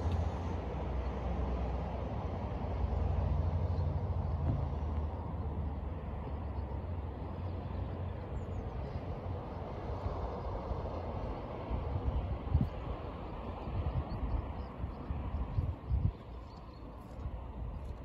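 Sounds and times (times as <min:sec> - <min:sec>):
outdoor rumble and hiss: 0:00.0 - 0:18.0
wind buffeting microphone: 0:08.2 - 0:18.0.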